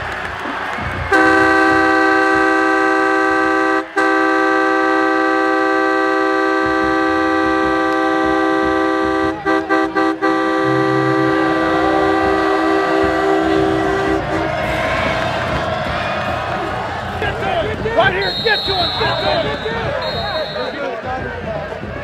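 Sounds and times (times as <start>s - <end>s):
train horn chord: 1.1s - 20.8s.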